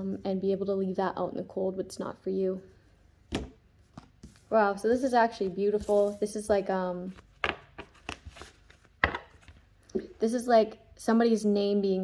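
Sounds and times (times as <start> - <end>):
cards slapping on table: 3.3 - 4.4.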